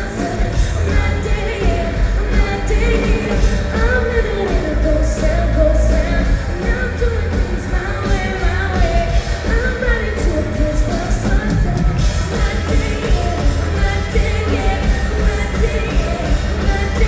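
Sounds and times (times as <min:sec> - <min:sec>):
live band playing pop-rock: 0:00.0 - 0:17.0
person singing: 0:00.0 - 0:17.0.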